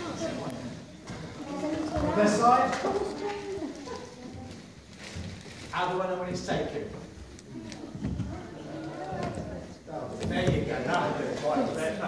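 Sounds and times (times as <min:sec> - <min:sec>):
murmur of low voices: 0:00.0 - 0:12.0.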